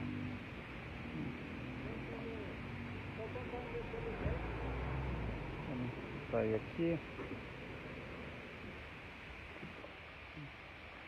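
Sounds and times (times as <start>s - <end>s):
truck engine rumble: 0.0s - 10.5s
background hiss: 0.0s - 11.0s.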